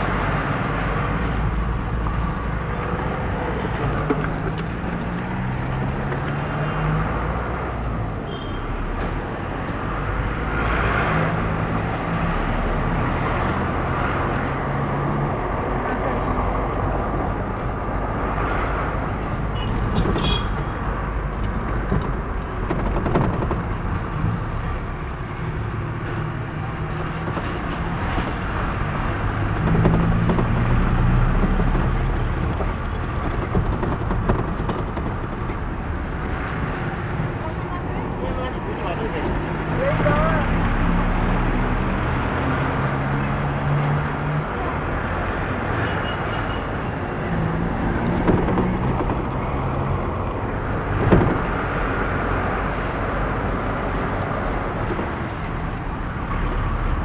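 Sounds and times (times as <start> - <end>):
road noise inside vehicle: 0.0 - 57.0.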